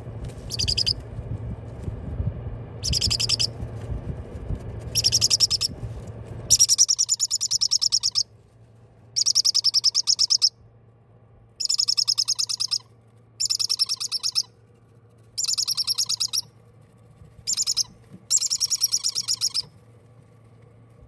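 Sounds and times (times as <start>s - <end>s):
faint steady hum: 0.0s - 21.0s
parrot chicks chirping: 0.5s - 1.0s, 2.8s - 3.5s, 4.9s - 5.8s, 6.5s - 8.2s, 9.2s - 10.5s, 11.6s - 14.5s, 15.4s - 16.5s, 17.5s - 19.7s.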